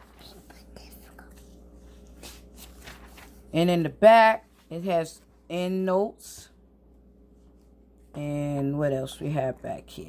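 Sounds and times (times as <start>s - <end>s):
thin pages being turned: 0.0s - 3.5s.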